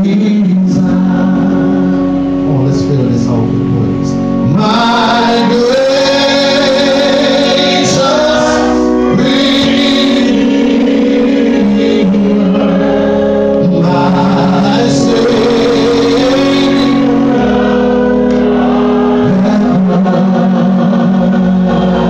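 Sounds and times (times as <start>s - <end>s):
man singing gospel: 0.0s - 22.0s
sustained accompaniment chords: 0.0s - 22.0s.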